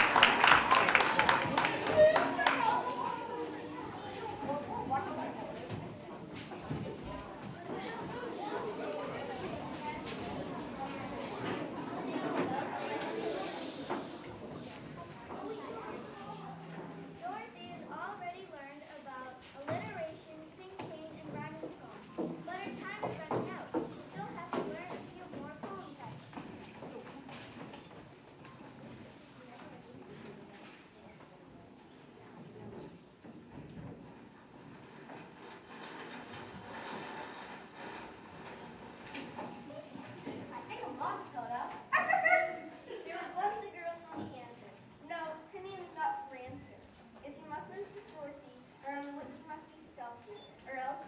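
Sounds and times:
children clapping: 0.0 - 3.4
faint indistinct voices: 0.0 - 51.0
voices: 39.6 - 51.0.

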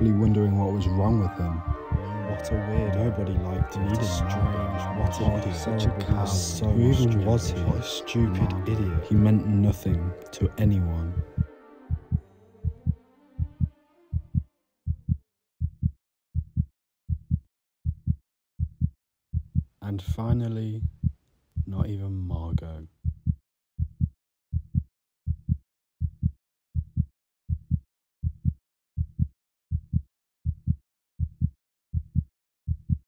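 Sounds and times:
held musical tone: 0.0 - 14.4
heartbeat thumps: 1.0 - 19.7, 20.3 - 33.0.

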